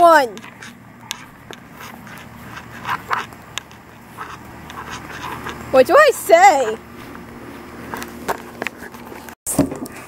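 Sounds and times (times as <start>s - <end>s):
handheld camera rustling and clicks: 0.3s - 5.7s, 6.9s - 9.4s.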